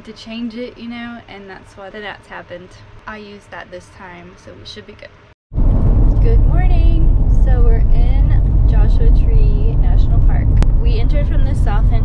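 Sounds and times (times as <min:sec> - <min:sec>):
road and engine rumble inside van: 0:05.6 - 0:12.0.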